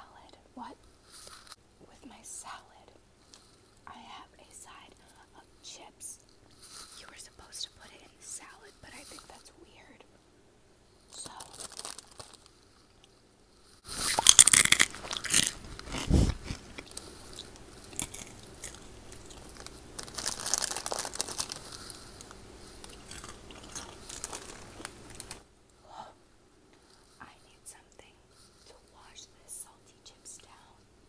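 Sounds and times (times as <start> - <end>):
crunchy snack chewing: 11.1 - 12.5, 13.9 - 25.4.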